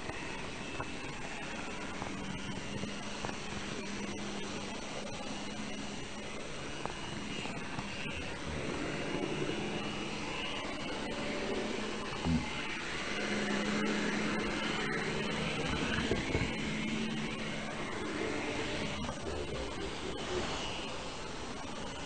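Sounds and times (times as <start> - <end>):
model train whirring: 0.0 - 22.0.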